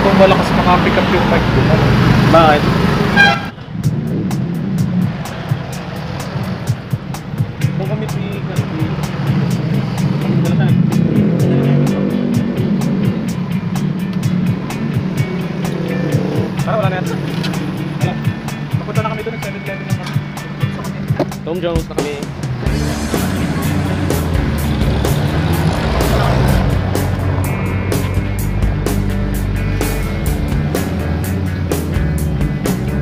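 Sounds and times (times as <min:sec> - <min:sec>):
motor vehicle engine droning: 0:00.0 - 0:21.5, 0:22.1 - 0:33.0
music playing: 0:00.0 - 0:33.0
sharp ticks: 0:12.8 - 0:17.8.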